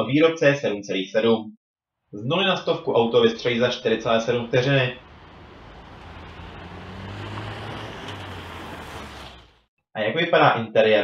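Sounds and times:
road noise: 3.2s - 9.7s
car engine passing: 3.4s - 9.7s.

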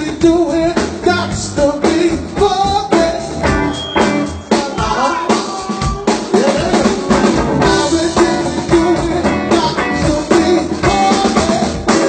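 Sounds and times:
drum kit: 0.0s - 12.0s
live band playing: 0.0s - 12.0s.

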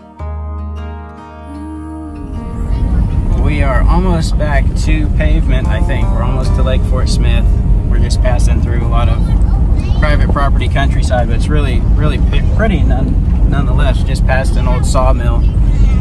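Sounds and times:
music: 0.0s - 9.8s
voices: 1.5s - 16.0s
vehicle cabin road rumble: 1.6s - 16.0s.

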